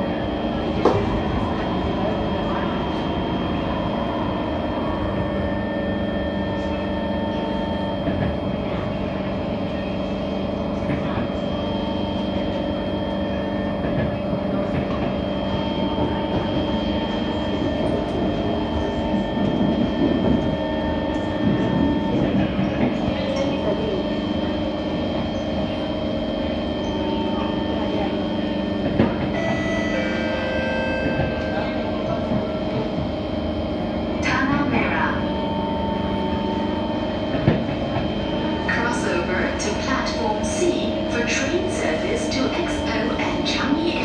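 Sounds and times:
train drive whine: 0.0s - 44.0s
train wheels rumbling on rail: 0.0s - 44.0s.

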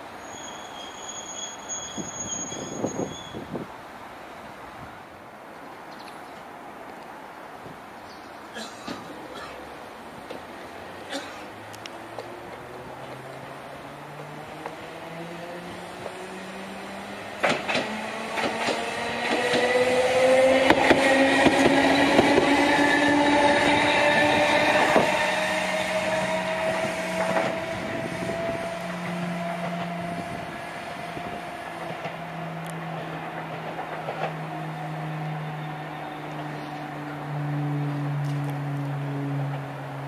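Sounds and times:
wheels clicking over rail joints: 10.2s - 15.0s, 17.3s - 22.6s, 26.6s - 34.8s
tram motor whine: 11.6s - 40.0s.

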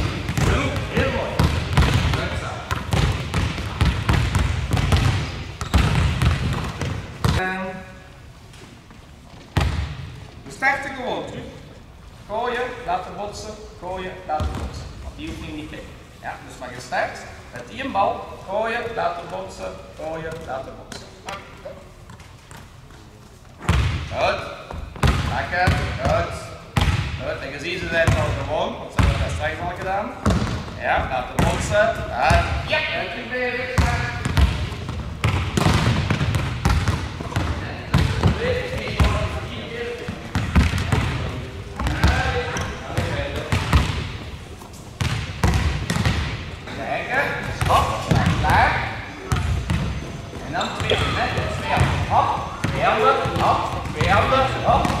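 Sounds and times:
volleyballs bouncing on floor: 0.0s - 7.4s, 29.0s - 30.7s, 33.7s - 44.2s, 45.0s - 46.5s, 47.4s - 50.1s, 50.8s - 55.0s
volleyballs struck by hand: 0.0s - 7.4s, 33.8s - 39.2s, 45.0s - 46.5s.

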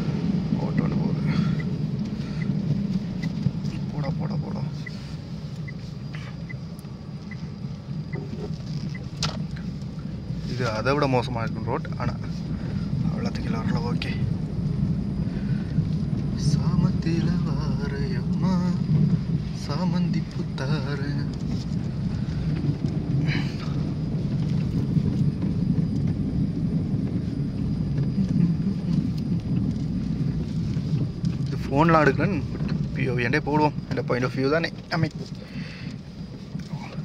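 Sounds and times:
car engine and tyres rumbling: 0.0s - 37.0s.

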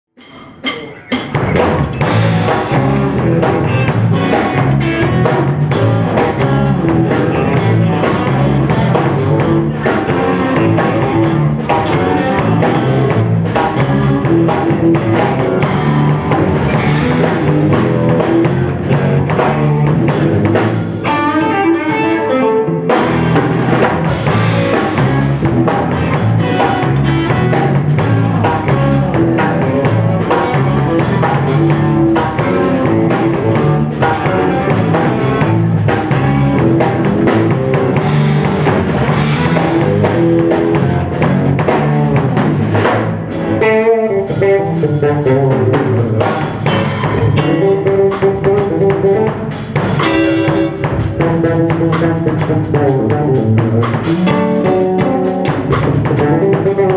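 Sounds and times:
electric guitar notes: 0.2s - 56.9s
live band playing: 0.2s - 56.9s.

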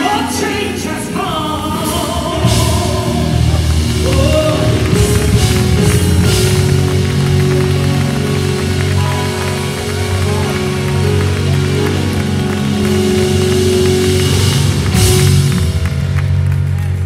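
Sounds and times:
woman singing: 0.0s - 5.4s
gospel band playing: 0.0s - 17.0s.

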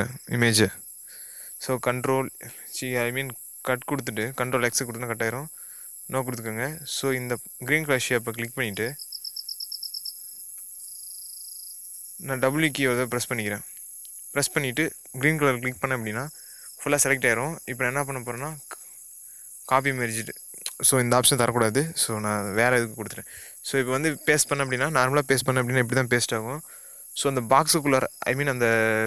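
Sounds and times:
person speaking: 0.0s - 0.8s, 1.6s - 5.5s, 6.1s - 9.0s, 12.2s - 13.6s, 14.4s - 18.8s, 19.7s - 26.6s, 27.2s - 29.0s
high-pitched hiss: 0.0s - 29.0s
high-pitched background tone: 19.7s - 26.6s.

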